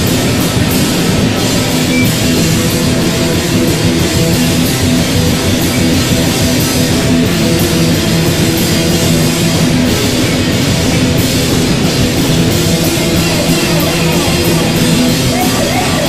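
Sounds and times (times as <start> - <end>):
drum kit: 0.0 - 16.0
electric guitar: 0.0 - 16.0.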